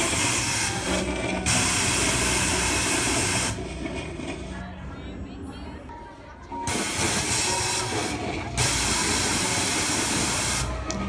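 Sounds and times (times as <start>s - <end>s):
air jet hissing: 0.0s - 3.6s, 6.7s - 10.8s.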